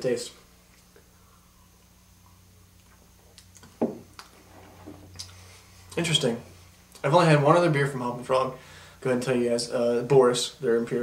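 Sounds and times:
glass knocking on wooden table: 0:03.8 - 0:04.1.

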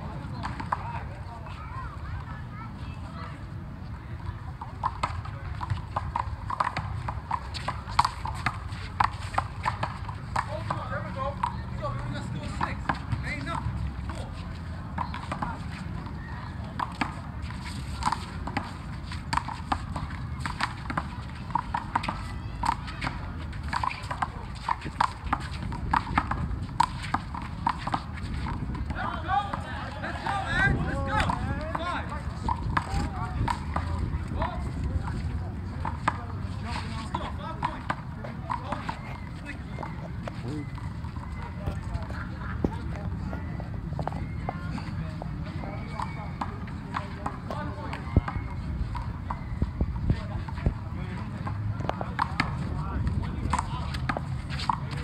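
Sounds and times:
voices of players and onlookers: 0:00.0 - 0:55.0.

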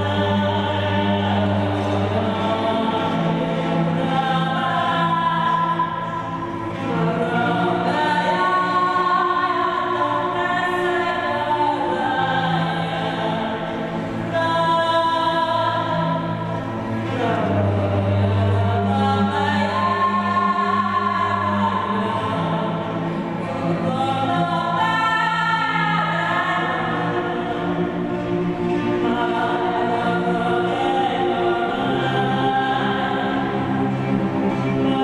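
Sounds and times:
bowed cello drone: 0:00.0 - 0:35.0
woman singing sustained notes: 0:00.0 - 0:35.0.

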